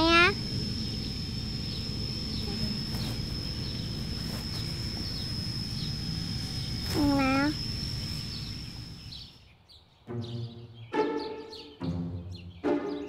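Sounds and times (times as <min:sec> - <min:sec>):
steady high-pitched whine: 0:00.0 - 0:09.4
small bird chirps: 0:00.0 - 0:13.0
person voiced sound: 0:06.9 - 0:07.6
soft background music: 0:10.1 - 0:13.0.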